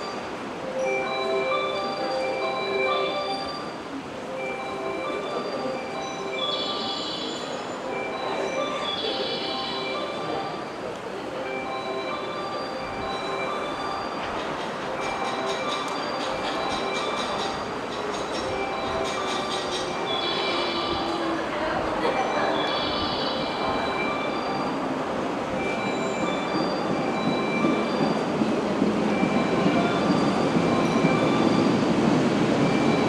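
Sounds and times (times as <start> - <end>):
train wheels rumbling on rail: 0.0 - 33.0.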